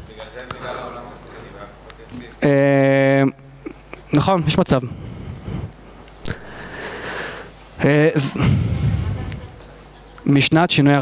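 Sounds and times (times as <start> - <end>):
man speaking: 0.0 - 5.1, 7.8 - 8.6
breath close to microphone: 4.8 - 7.6, 8.4 - 9.4.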